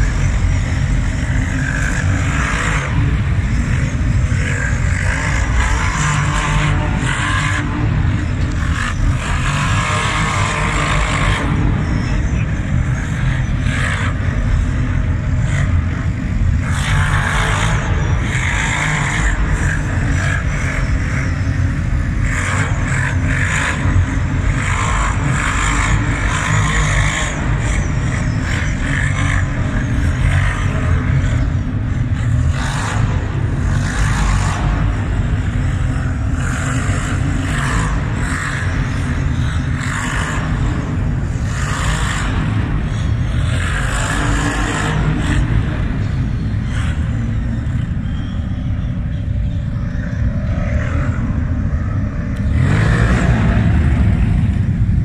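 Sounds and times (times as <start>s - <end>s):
quad bike engines revving: 0.0s - 55.0s.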